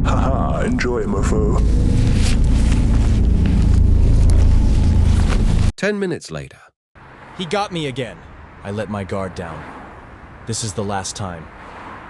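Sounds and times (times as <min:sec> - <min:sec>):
low rumbling noise: 0:00.0 - 0:05.7.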